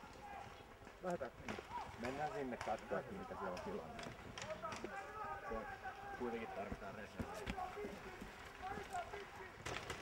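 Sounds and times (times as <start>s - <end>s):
footsteps on soft ground: 6.5s - 9.2s.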